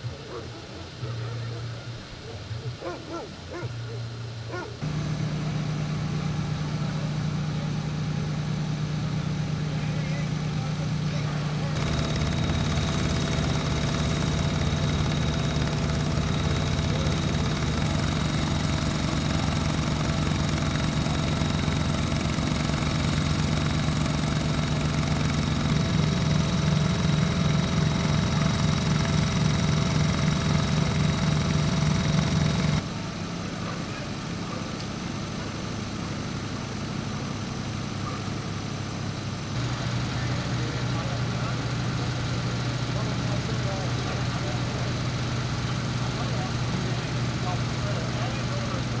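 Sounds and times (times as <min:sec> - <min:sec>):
diesel engine idling: 0:04.2 - 0:49.0.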